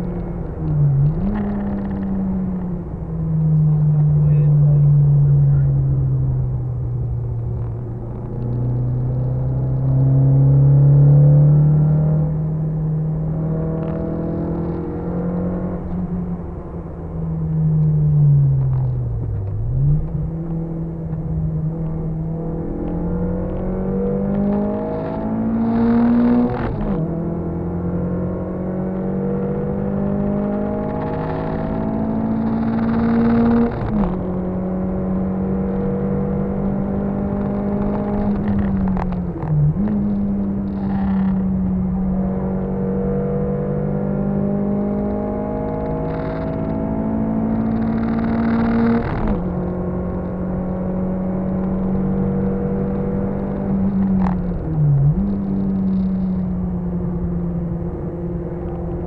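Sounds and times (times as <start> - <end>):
car engine revving through gears: 0.0 - 59.0.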